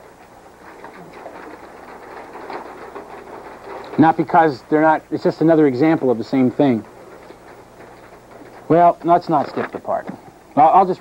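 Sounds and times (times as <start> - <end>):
steady hiss: 0.0 - 11.0
paper pages rustling: 0.2 - 10.3.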